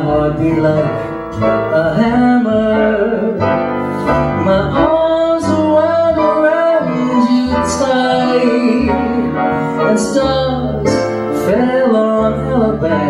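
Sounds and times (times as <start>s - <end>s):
double bass: 0.0s - 13.0s
grand piano: 0.0s - 13.0s
man singing wordless notes: 0.0s - 13.0s.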